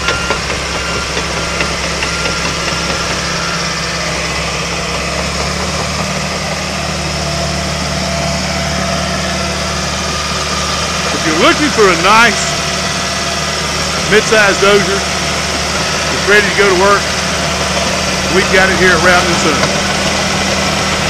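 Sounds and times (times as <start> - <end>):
bulldozer diesel engine running: 0.0 - 21.0.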